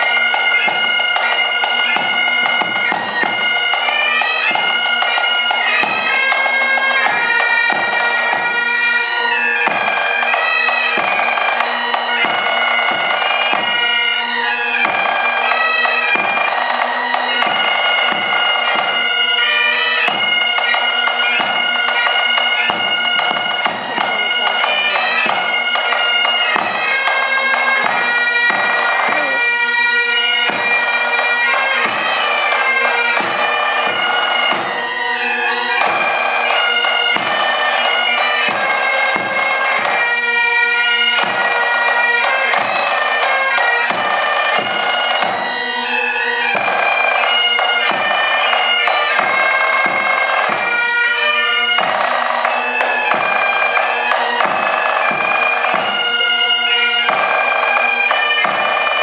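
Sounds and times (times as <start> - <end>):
snare drum: 0.0 - 8.5
bagpipes playing a tune: 0.0 - 59.0.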